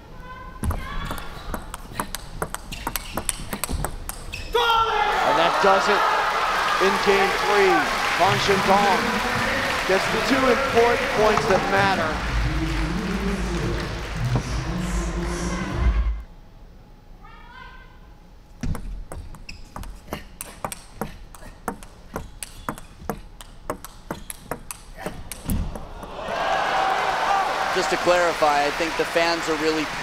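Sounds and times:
table tennis ball clicks: 0:01.1 - 0:04.3, 0:21.7 - 0:25.9
arena crowd noise: 0:04.6 - 0:16.3, 0:25.6 - 0:30.0.

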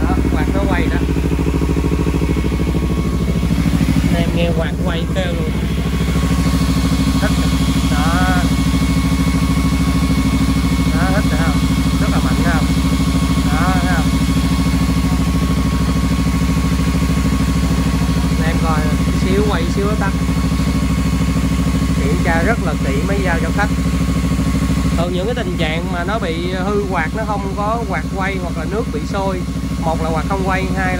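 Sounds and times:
motorcycle engine idling: 0:00.0 - 0:30.9
radiator fan whine: 0:00.0 - 0:30.9.

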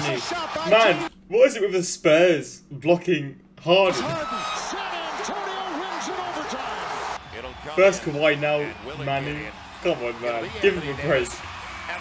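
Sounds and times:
crowd cheering: 0:00.0 - 0:01.1, 0:03.8 - 0:12.0.

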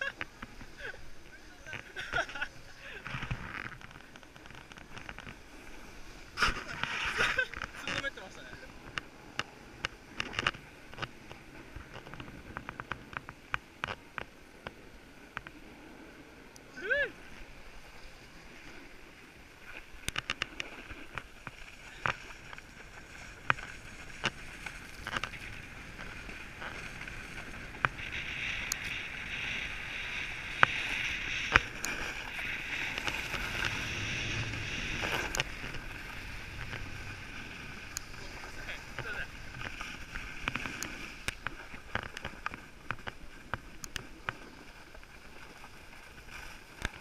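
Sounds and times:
skis scraping over packed snow: 0:00.0 - 0:47.0.

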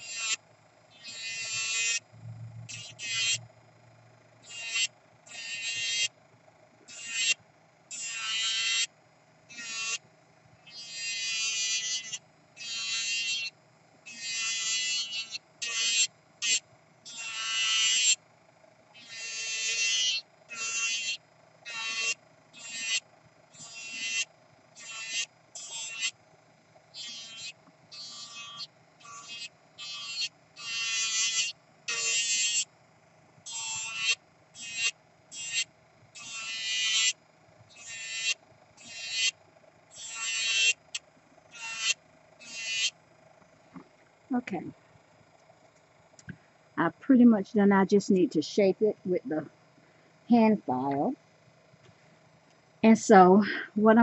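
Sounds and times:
drill bit scraping nail: 0:00.0 - 0:00.4, 0:01.0 - 0:02.0, 0:02.7 - 0:03.4, 0:04.4 - 0:06.1, 0:06.9 - 0:08.9, 0:09.5 - 0:10.0, 0:10.7 - 0:13.5, 0:14.1 - 0:18.2, 0:19.0 - 0:23.0, 0:23.6 - 0:26.2, 0:27.0 - 0:32.7, 0:33.5 - 0:39.3, 0:39.9 - 0:40.9, 0:41.5 - 0:42.9
electric nail drill motor hum: 0:00.0 - 0:43.4.

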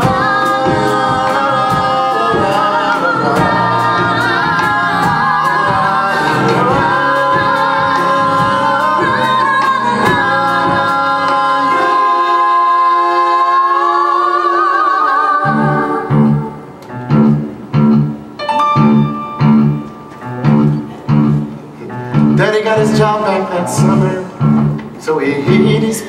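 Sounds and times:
live band playing: 0:00.0 - 0:14.1, 0:15.4 - 0:26.0
voices singing in harmony: 0:00.0 - 0:17.0.

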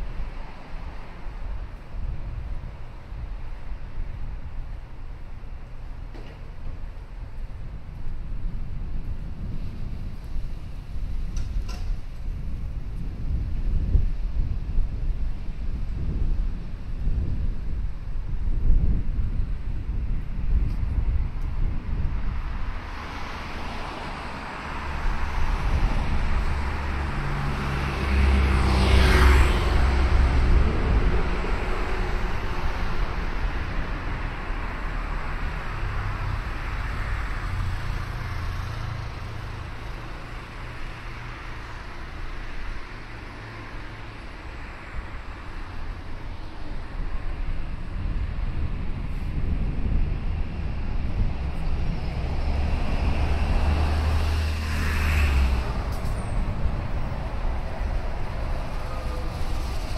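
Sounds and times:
low rumble of traffic: 0:00.0 - 0:59.9
vehicle hum: 0:00.0 - 0:59.9
car passing by: 0:22.5 - 0:59.9.

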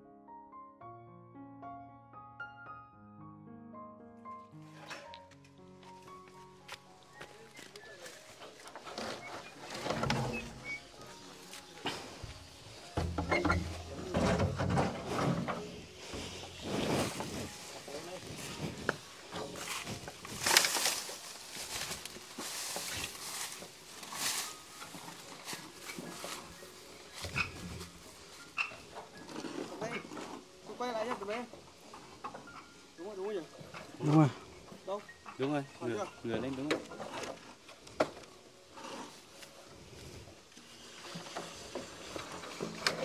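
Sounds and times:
metal roofing sheets clattering: 0:08.0 - 0:26.6.

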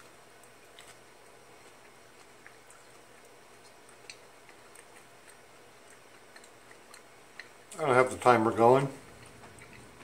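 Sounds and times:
person chewing: 0:00.0 - 0:07.8, 0:08.9 - 0:10.0.

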